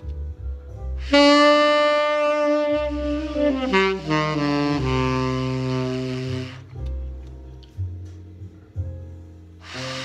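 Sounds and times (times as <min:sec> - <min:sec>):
tenor saxophone long note: 0:01.0 - 0:06.8.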